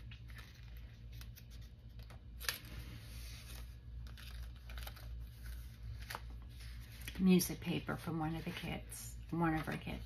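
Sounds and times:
paper pages rustling: 0.0 - 10.0.

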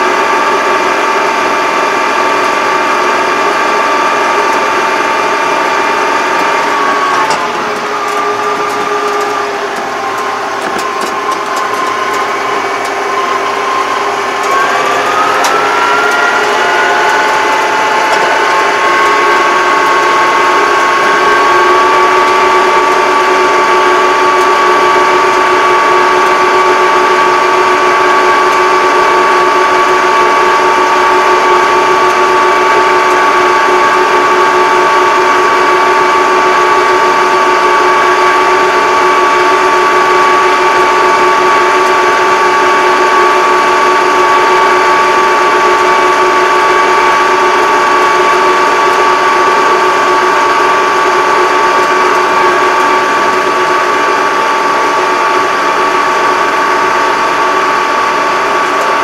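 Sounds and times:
diesel tractor engine running: 0.0 - 59.0
high drivetrain whine: 0.0 - 59.0.

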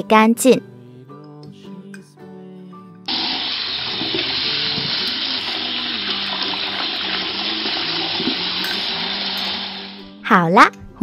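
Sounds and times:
soft background music: 0.0 - 11.0
running water tap: 3.1 - 10.0.

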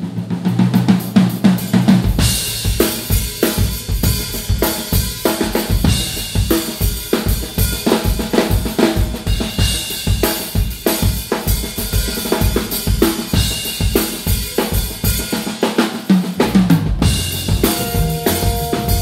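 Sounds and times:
drum kit groove: 0.0 - 19.0
upright bass low notes: 16.9 - 19.0.

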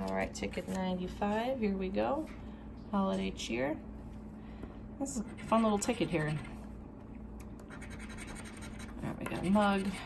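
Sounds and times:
coin scratching a ticket: 7.7 - 10.0.

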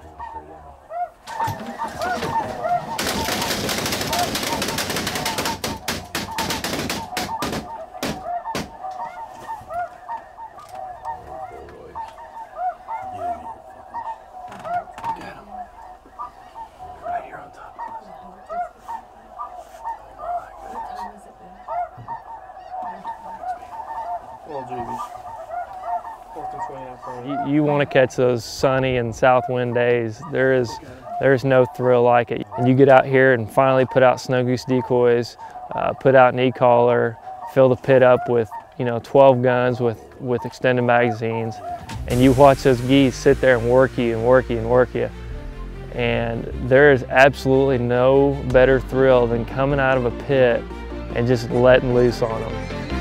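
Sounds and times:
flock of geese honking: 0.0 - 53.0
burst of sharp cracks: 1.2 - 8.8.

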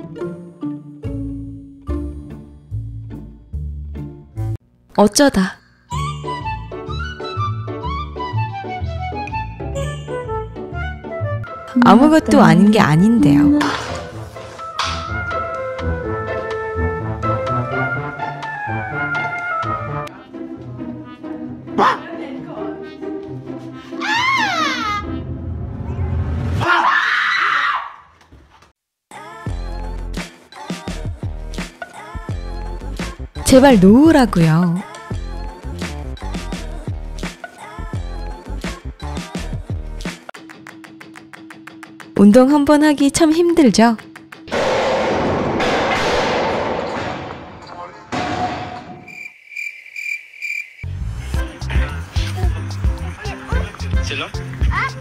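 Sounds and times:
person screaming: 24.0 - 25.1, 26.6 - 28.0
chirping cricket sound effect: 49.0 - 51.2.

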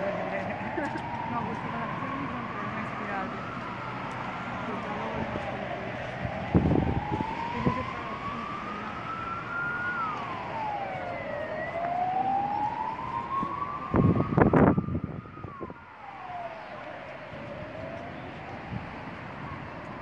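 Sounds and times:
emergency siren wailing: 0.0 - 20.0.

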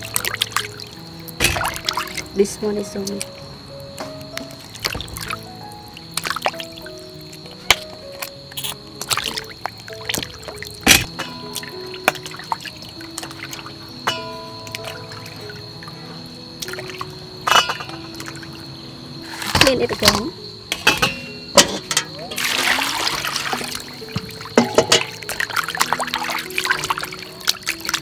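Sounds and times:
water splashing in metal basin: 0.0 - 3.3, 4.4 - 16.0, 16.6 - 18.6, 19.2 - 28.0
background music held notes: 0.0 - 28.0.

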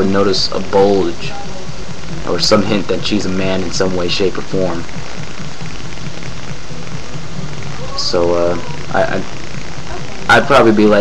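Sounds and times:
faint low hum: 0.0 - 11.0
microphone hiss: 0.0 - 11.0.

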